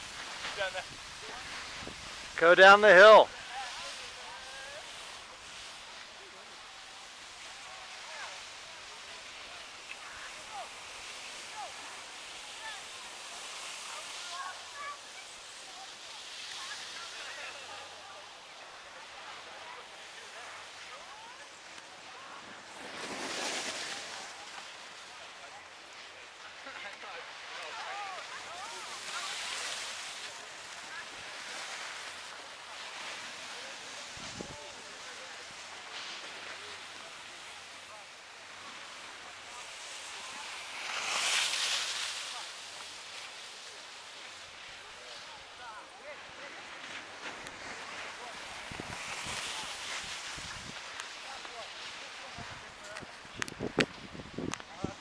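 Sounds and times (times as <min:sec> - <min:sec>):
hissing slide over snow: 0:00.0 - 0:55.0.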